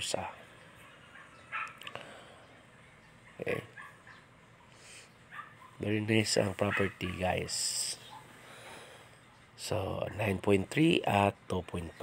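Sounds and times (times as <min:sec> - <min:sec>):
dog barking faintly: 0:00.8 - 0:01.9, 0:03.2 - 0:08.4, 0:09.8 - 0:10.6.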